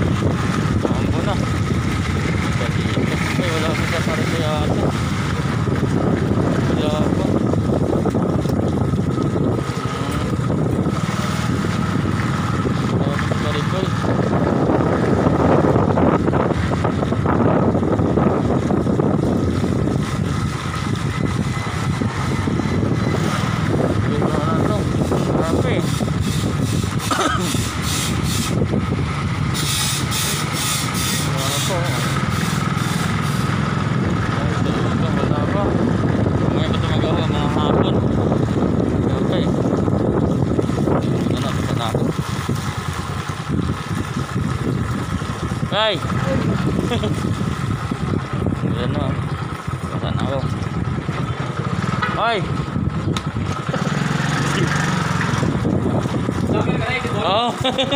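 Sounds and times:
motorcycle engine running: 0.0s - 57.9s
wind noise on microphone: 0.0s - 57.9s.

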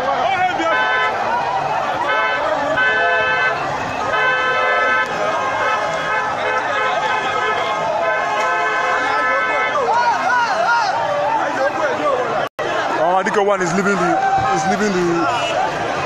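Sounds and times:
crowd shouting: 0.0s - 16.0s
horns blowing: 0.2s - 10.3s, 12.0s - 16.0s.

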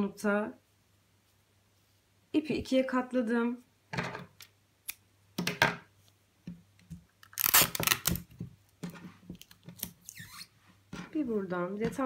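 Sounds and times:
tape ripping from dispenser: 7.2s - 8.3s, 9.4s - 10.5s.

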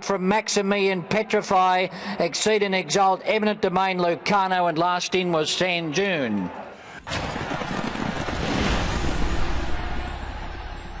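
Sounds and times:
rushing rumbling noise: 7.4s - 11.0s.

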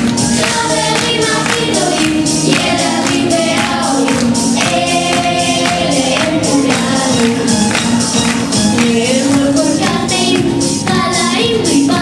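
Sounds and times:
children's choir singing: 0.0s - 12.0s
instrumental music with beat: 0.0s - 12.0s.

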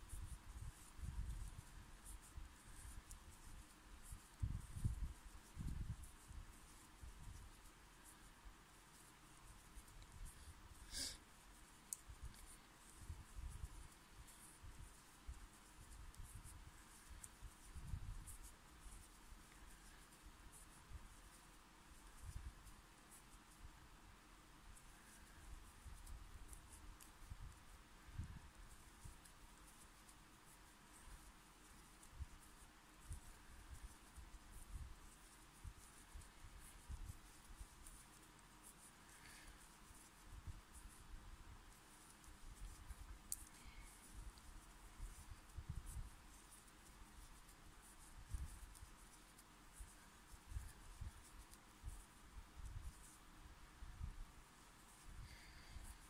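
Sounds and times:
crochet hook scratching yarn: 0.0s - 56.0s.

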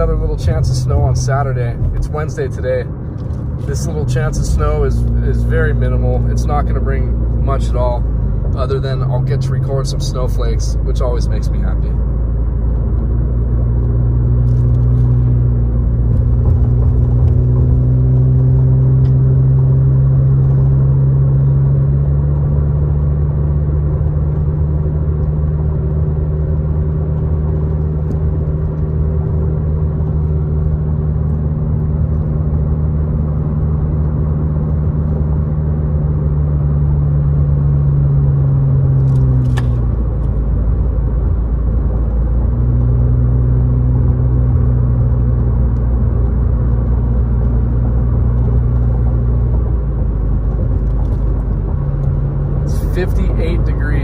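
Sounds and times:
car engine drone: 0.0s - 54.0s
road rush: 0.0s - 54.0s.

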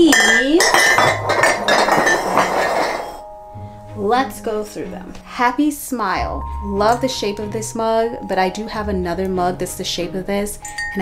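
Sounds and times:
ceramic mugs clinking and clattering: 0.0s - 3.2s.

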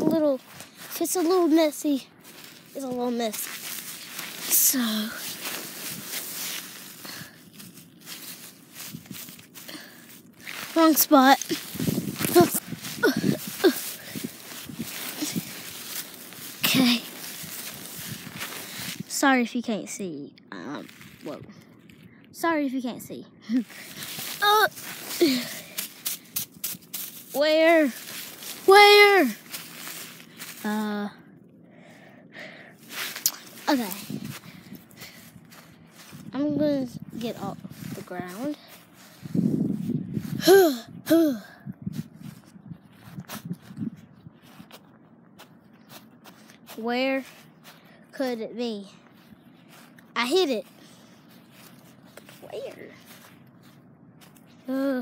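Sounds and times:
dry grass rustling and crackling: 0.0s - 19.2s, 20.5s - 22.2s, 23.6s - 41.0s, 41.8s - 55.0s.

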